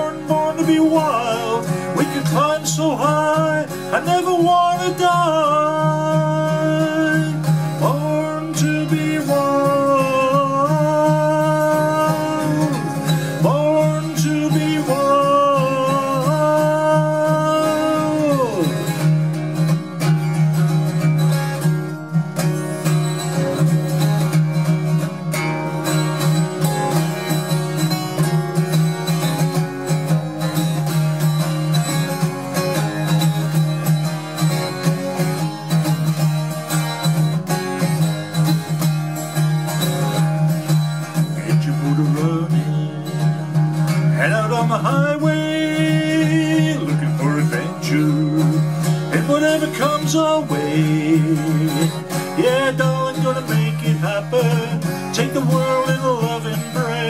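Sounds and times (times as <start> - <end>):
acoustic guitar strummed: 0.0 - 57.0.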